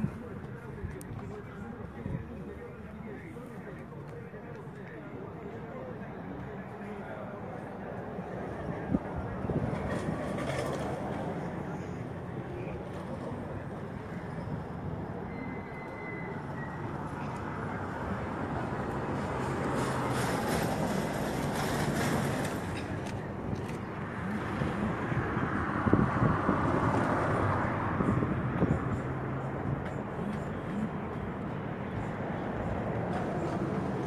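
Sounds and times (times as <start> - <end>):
vehicle rumble: 0.0 - 34.0.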